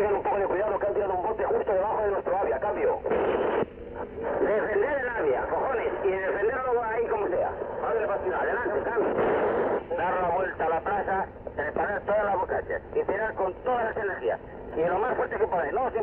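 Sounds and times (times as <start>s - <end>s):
man talking over two-way radio: 0.0s - 3.2s, 4.2s - 9.2s, 9.8s - 16.0s
radio static burst: 2.1s - 12.5s.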